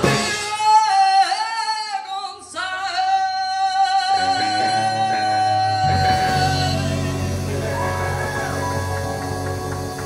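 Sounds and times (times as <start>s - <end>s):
rock band playing: 0.0s - 1.1s, 4.2s - 10.0s
woman singing: 0.4s - 9.0s
electric guitar: 4.2s - 10.0s.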